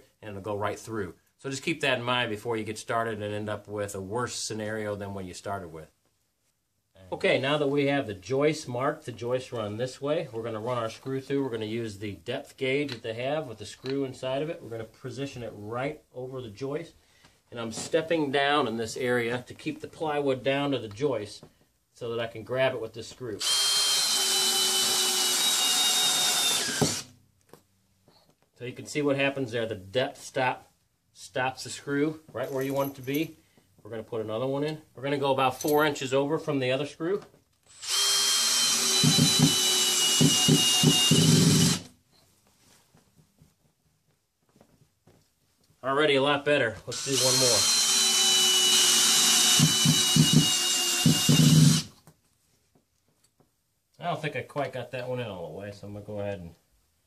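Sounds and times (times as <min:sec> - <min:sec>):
cordless drill whining under load: 0:23.4 - 0:27.1, 0:37.7 - 0:41.9, 0:46.9 - 0:51.9.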